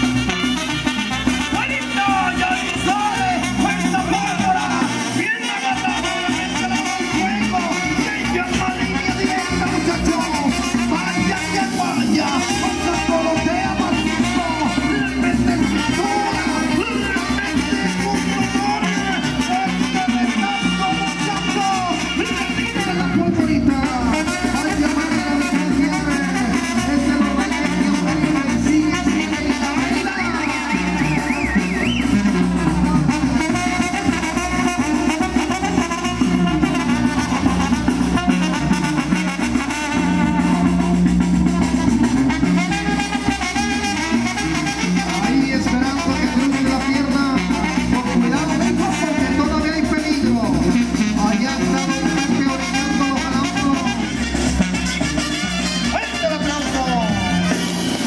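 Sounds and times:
banda music with brass and drums: 0.0 - 58.0.

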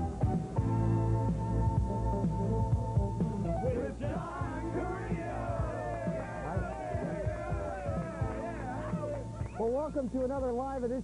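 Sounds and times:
rock music with a beat: 0.0 - 9.6.

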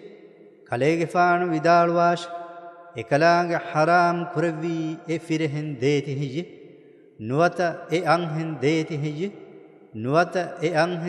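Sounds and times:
man chanting melodically: 0.0 - 6.5, 7.2 - 11.0.

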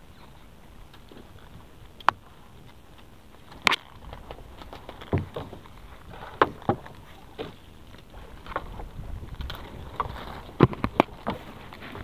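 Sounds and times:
low steady background noise: 0.0 - 12.0
knocks and clatters on a boat: 0.2 - 12.0.

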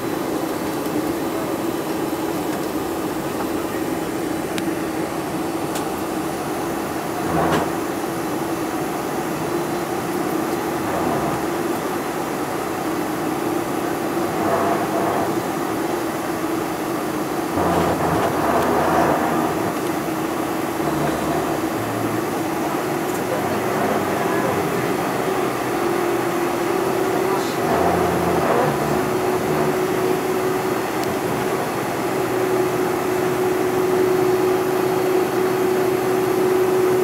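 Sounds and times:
airplane engine hum: 0.0 - 37.0.

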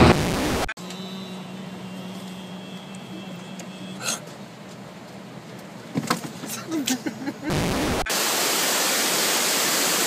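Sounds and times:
faint high whine: 0.1 - 4.0.

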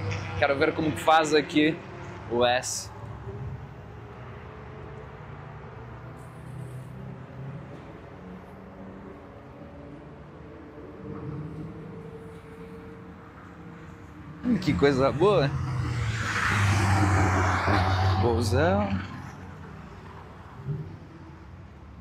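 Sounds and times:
distant race car engines droning: 0.0 - 22.0.

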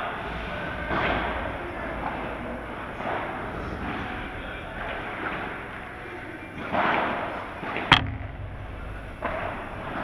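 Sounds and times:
low ring in hall: 0.0 - 10.0
padel ball impact crack: 7.8 - 9.6.

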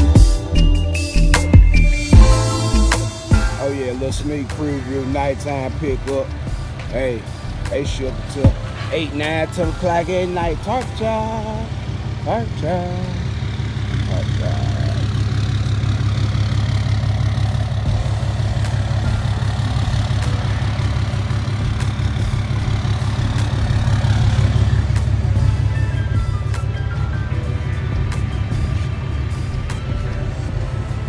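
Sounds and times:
background music: 0.0 - 31.0
truck engine idling: 0.0 - 31.0.

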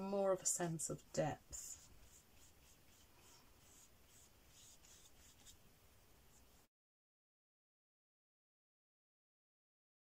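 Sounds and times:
paintbrush strokes on paper: 0.8 - 6.7.

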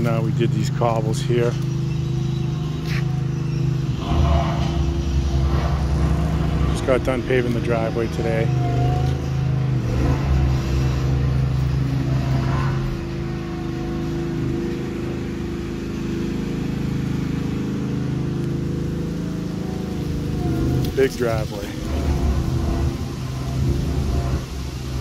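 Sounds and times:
construction machine engine humming: 0.0 - 25.0.

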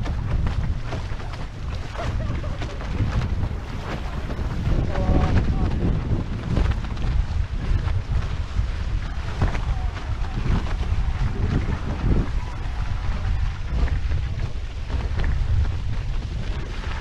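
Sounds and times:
water rushing and spraying: 0.0 - 17.0
wind buffeting microphone: 0.0 - 17.0.

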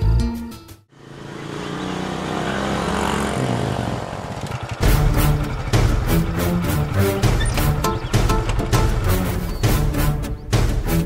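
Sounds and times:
music: 0.0 - 0.9, 4.8 - 11.0
motorcycle engine at low speed: 0.9 - 10.9.

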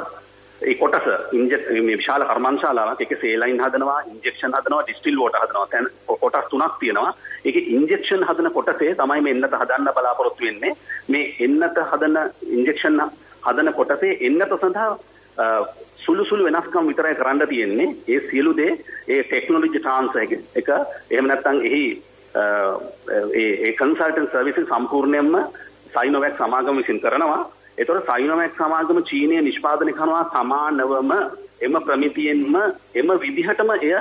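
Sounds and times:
person talking: 0.0 - 34.0
radio speech: 0.0 - 34.0.

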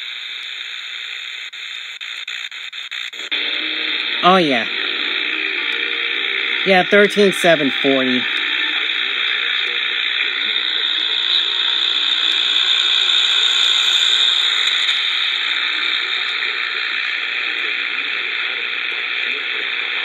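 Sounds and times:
radio static hiss: 0.0 - 20.0
faint radio station: 3.2 - 11.6.

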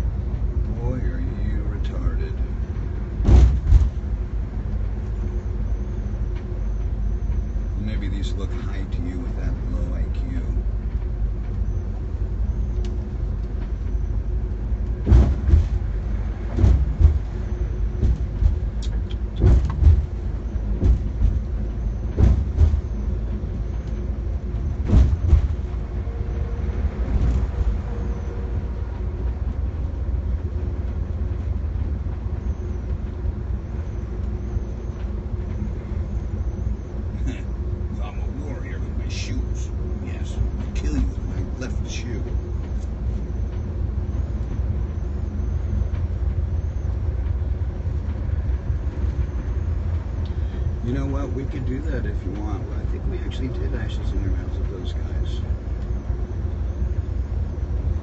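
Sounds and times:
bus engine and road rumble: 0.0 - 58.0
short knocks and rattles: 3.2 - 4.1, 15.0 - 15.9, 18.0 - 21.5, 22.1 - 23.0, 24.8 - 25.8.

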